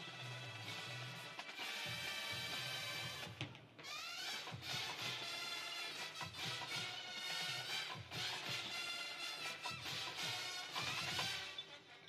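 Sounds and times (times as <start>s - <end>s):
drums: 0.0s - 12.0s
brass horns holding chords: 4.9s - 12.0s.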